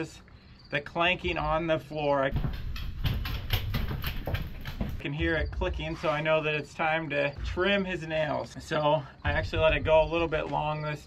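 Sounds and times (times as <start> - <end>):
dog toenails clicking on wood floor: 2.3 - 5.0.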